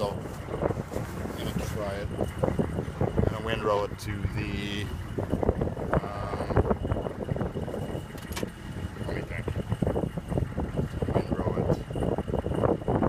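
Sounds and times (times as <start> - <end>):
faint high whine: 0.0 - 13.0
truck engine low rumble: 0.0 - 13.0.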